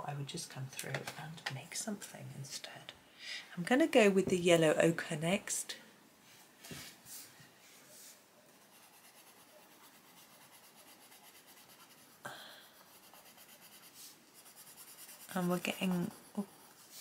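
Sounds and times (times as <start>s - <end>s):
pencil shading on paper: 8.5s - 17.0s.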